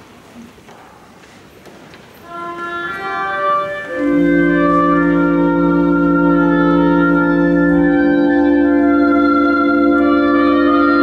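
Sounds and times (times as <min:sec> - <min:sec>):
church organ playing: 0:02.2 - 0:11.0.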